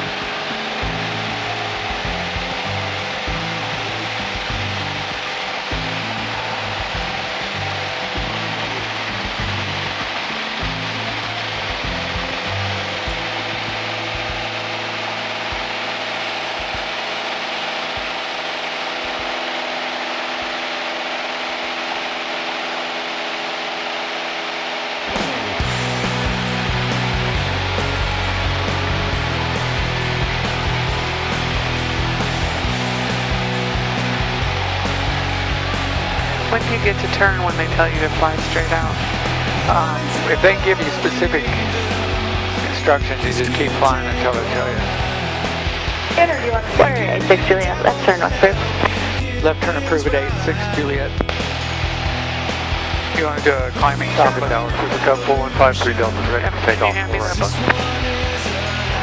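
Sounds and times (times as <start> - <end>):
background music with steady beat: 0.0 - 20.0, 25.2 - 59.0
aircraft engine and propeller droning: 0.0 - 59.0.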